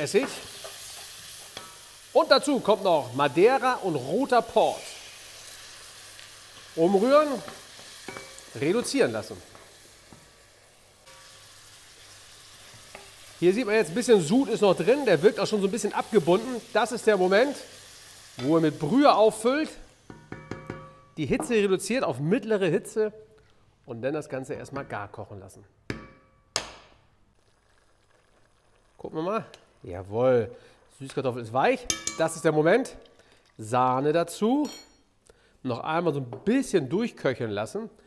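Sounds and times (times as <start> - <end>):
faint sizzling in a pot: 0.0 - 22.0, 27.3 - 35.5
spoon knocking metal pot: 7.5 - 8.4, 20.1 - 21.6, 25.9 - 26.7, 31.8 - 32.4.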